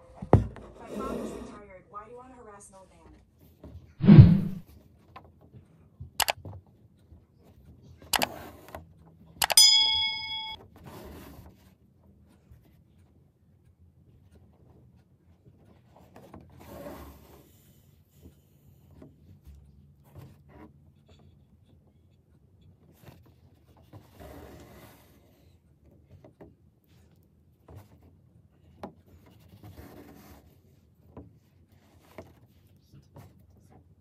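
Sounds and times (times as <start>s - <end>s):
thread drawn through fabric: 4.0s - 4.6s
needle ticks: 9.4s - 10.3s.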